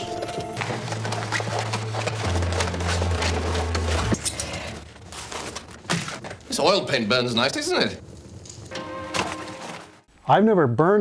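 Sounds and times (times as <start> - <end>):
canvas and paper rustling: 0.0 - 7.0.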